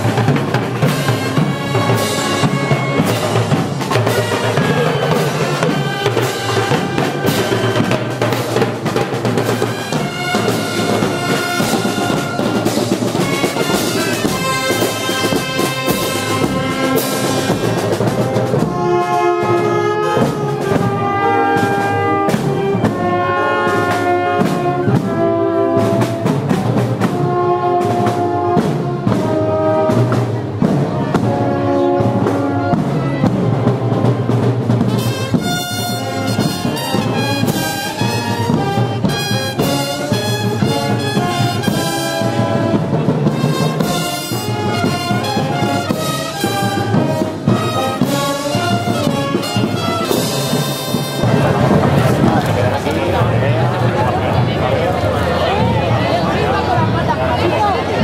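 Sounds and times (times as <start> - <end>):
snare drum: 0.0 - 54.0
bass drum: 0.0 - 58.0
timpani: 0.0 - 58.0
trumpets and trombones: 0.0 - 58.0.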